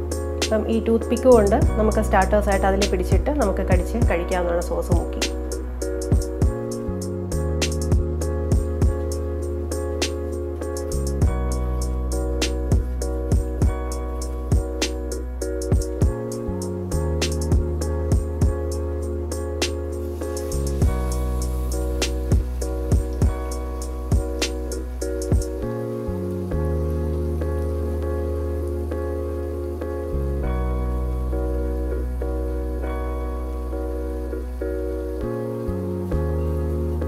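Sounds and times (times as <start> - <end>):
background music of sustained chords: 0.0 - 37.0
hot oil sizzling and bubbling: 0.0 - 37.0.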